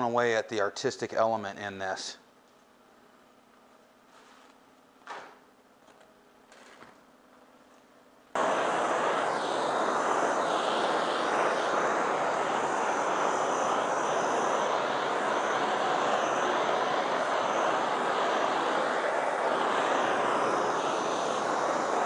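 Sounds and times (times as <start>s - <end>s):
gas torch hissing: 8.4s - 22.0s.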